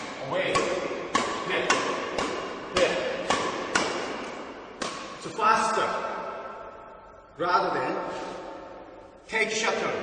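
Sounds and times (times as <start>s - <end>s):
badminton racket hitting shuttlecock: 0.0s - 5.3s.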